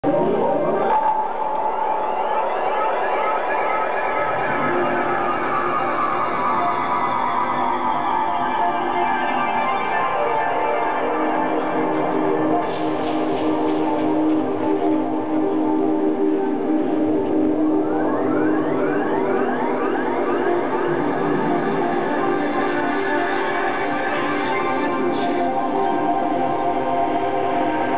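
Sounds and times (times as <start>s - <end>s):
sustained synthesizer tones: 0.0s - 27.9s.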